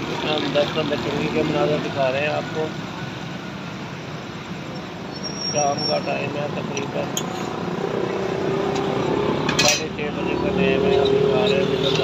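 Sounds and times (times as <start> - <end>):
street traffic noise: 0.0 - 12.0
vehicle engine humming: 0.0 - 12.0.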